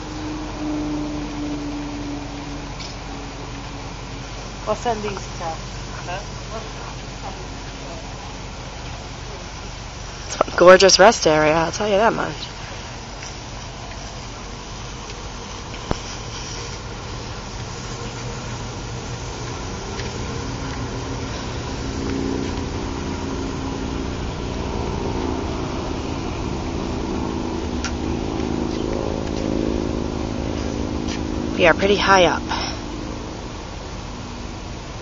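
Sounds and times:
vehicle engine running: 0.0 - 35.0.

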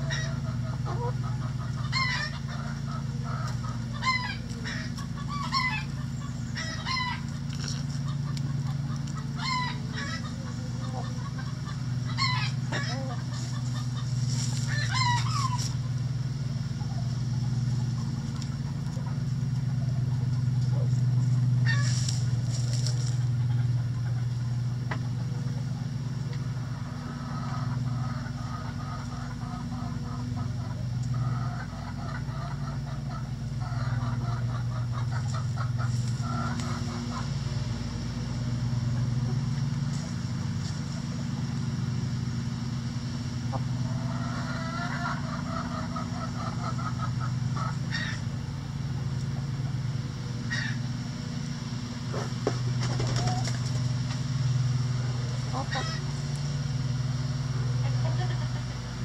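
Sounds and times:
chickens calling: 0.0 - 59.0
chickens clucking: 0.0 - 59.0
steady low hum: 0.0 - 59.0.

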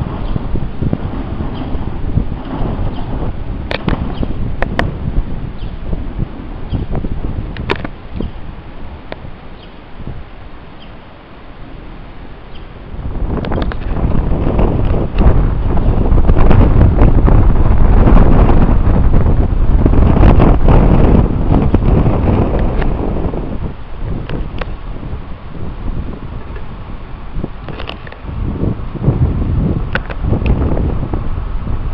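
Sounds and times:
wind buffeting microphone: 0.0 - 31.9.

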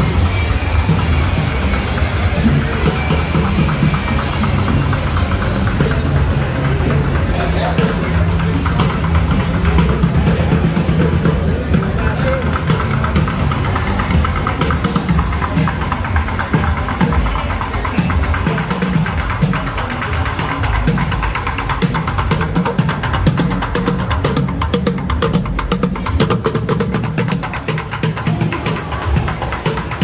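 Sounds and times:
crowd chatter: 0.0 - 30.0
drumming on plastic buckets: 0.0 - 30.0
music with heavy bass beat: 0.0 - 30.0.

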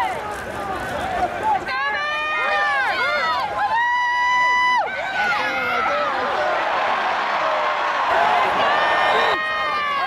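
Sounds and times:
football crowd yelling: 0.0 - 10.0.

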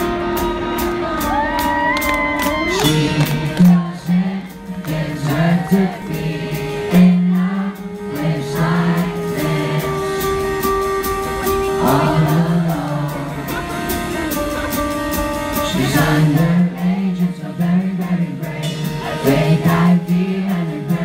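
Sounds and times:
person singing: 0.0 - 21.0
pop-punk band playing live: 0.0 - 21.0.

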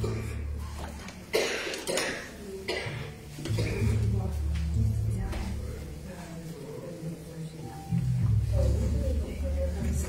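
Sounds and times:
person coughing: 1.3 - 4.0.

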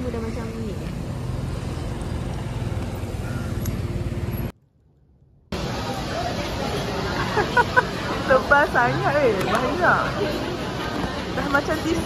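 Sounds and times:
street traffic noise: 0.0 - 12.0
vehicle engine humming: 0.0 - 12.0.

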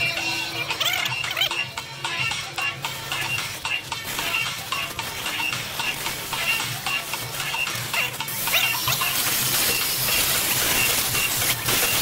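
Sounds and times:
background music: 0.0 - 12.0
welding torch flame hissing: 8.2 - 12.0.

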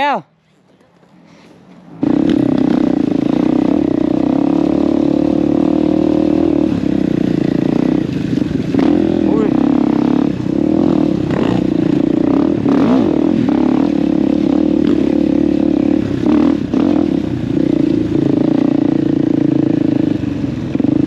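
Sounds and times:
motorcycle engine revving: 1.9 - 21.0.

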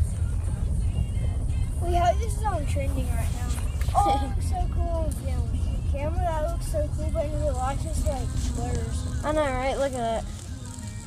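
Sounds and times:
car cabin rumble: 0.0 - 11.0
faint music: 0.0 - 11.0.

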